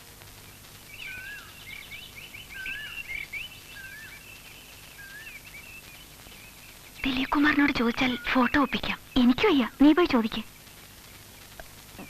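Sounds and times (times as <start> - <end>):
faint hiss: 0.0 - 12.0
birds chirping: 0.4 - 12.0
bird wavering whistle: 1.0 - 6.0.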